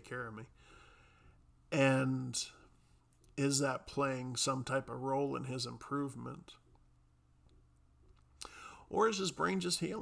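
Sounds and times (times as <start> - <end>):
breathy intake of breath: 0.6 - 1.4, 8.4 - 8.9.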